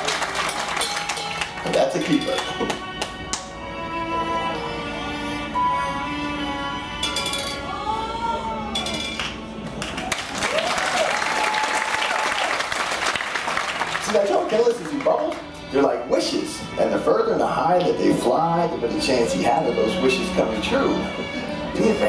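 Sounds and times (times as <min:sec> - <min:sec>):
audience applauding: 0:00.0 - 0:03.1, 0:09.7 - 0:15.4
background music with gliding melody: 0:00.0 - 0:10.9, 0:13.4 - 0:22.0.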